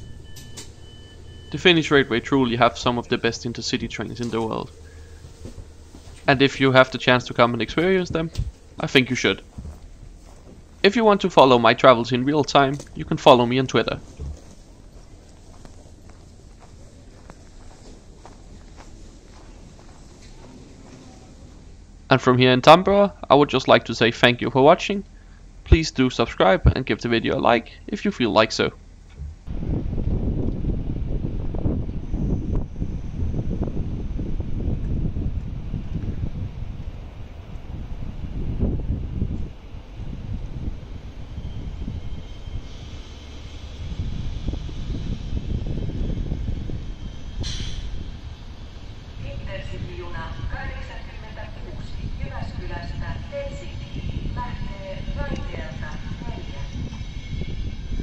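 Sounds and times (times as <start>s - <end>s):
faint steady whine: 0.0s - 58.0s
train rolling past: 0.0s - 58.0s
footsteps crunching on snow: 9.4s - 10.9s, 14.0s - 21.0s
short hiss: 47.4s - 47.9s.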